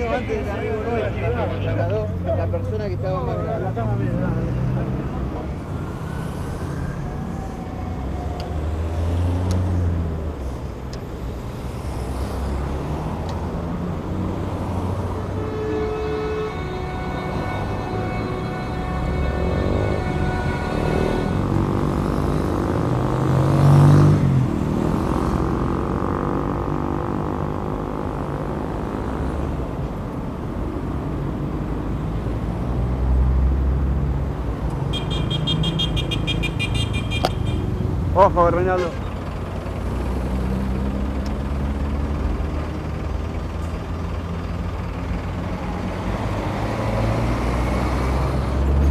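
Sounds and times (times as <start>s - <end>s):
car engines passing slowly: 0.0s - 15.4s, 16.1s - 48.9s
long car horn: 15.1s - 22.2s, 34.9s - 37.7s.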